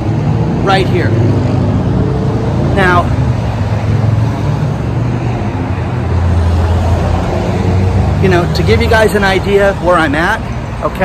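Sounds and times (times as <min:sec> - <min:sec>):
cars passing close by: 0:00.0 - 0:11.0.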